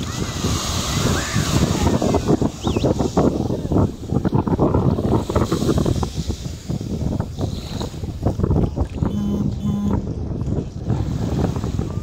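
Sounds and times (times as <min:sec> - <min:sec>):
small waves lapping: 0:00.0 - 0:12.0
wind buffeting microphone: 0:00.0 - 0:12.0
short pitched beeps: 0:09.1 - 0:10.0.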